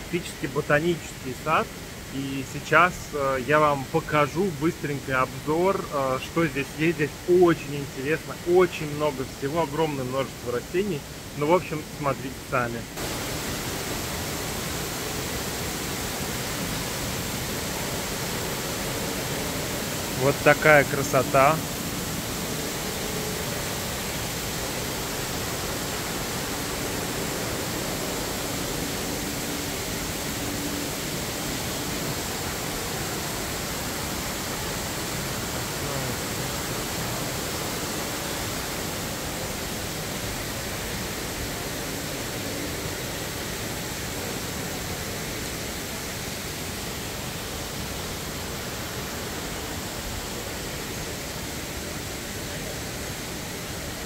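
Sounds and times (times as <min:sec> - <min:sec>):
water streams falling into pool: 0:00.0 - 0:54.0.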